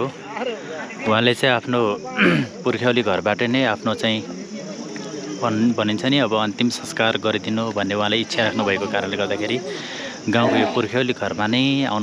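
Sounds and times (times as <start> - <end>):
insects chirring: 0.0 - 12.0
man talking: 5.4 - 12.0.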